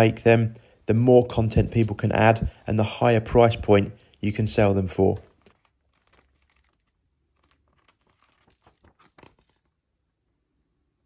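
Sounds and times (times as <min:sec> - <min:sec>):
paper pages turning: 0:05.2 - 0:09.8.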